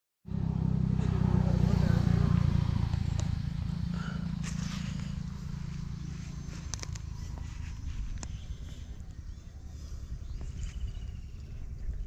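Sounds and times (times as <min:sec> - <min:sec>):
wind buffeting microphone: 0:02.3 - 0:12.0.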